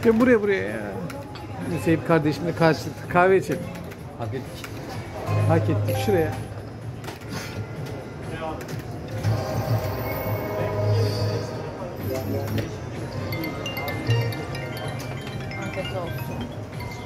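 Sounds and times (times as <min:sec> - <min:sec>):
slot machine jingles and chimes: 0:05.8 - 0:06.8, 0:13.1 - 0:17.0
casino voices: 0:13.1 - 0:17.0.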